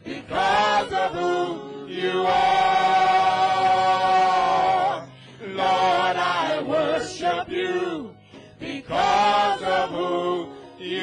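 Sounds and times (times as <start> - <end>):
choir singing sustained note: 0.0 - 11.0.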